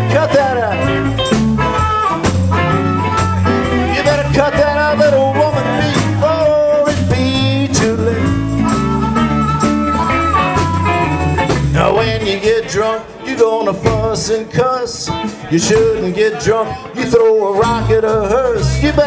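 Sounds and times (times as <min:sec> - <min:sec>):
drum groove: 0:00.0 - 0:19.0
electric bass: 0:00.0 - 0:19.0
electric guitars: 0:00.0 - 0:19.0
wavering lead line: 0:07.3 - 0:13.5.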